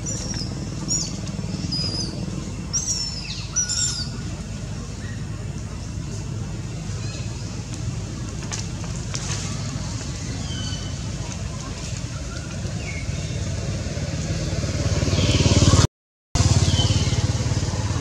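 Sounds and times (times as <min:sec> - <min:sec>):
motor running with low rumble: 0:00.0 - 0:15.8, 0:16.4 - 0:18.0.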